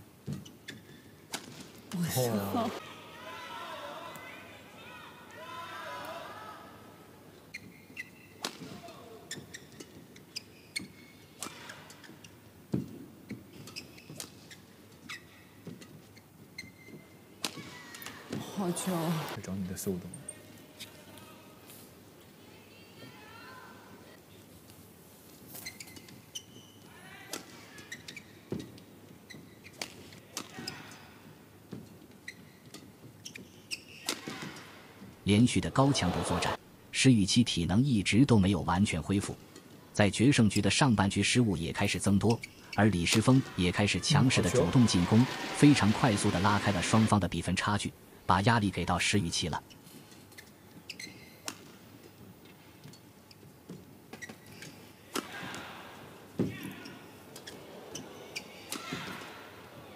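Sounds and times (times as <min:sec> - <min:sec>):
shoes squeaking on court: 0:00.2 - 0:01.8, 0:07.4 - 0:19.4, 0:25.4 - 0:35.2, 0:42.2 - 0:43.4, 0:49.6 - 0:55.6, 0:56.2 - 0:59.9
racket hitting shuttlecock: 0:34.0 - 0:34.6, 0:51.4 - 0:51.8, 0:55.1 - 0:55.8.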